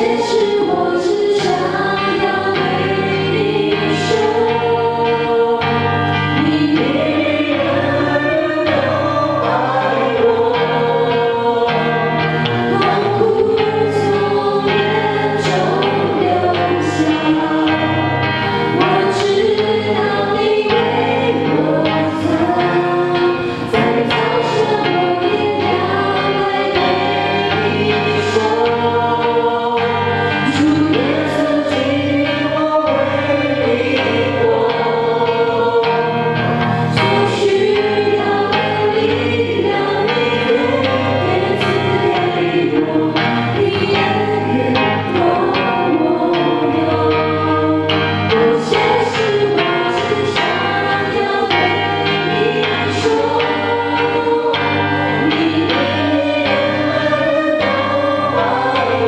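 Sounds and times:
acoustic guitar: 0.0s - 59.0s
group singing a hymn: 0.0s - 59.0s.

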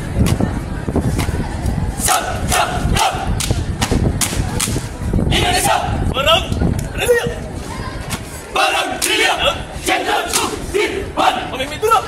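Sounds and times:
group of voices shouting: 2.0s - 3.4s, 5.3s - 6.1s, 8.5s - 12.0s.

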